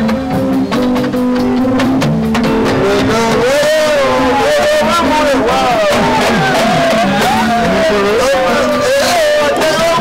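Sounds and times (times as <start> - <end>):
live band music: 1.0 - 7.3.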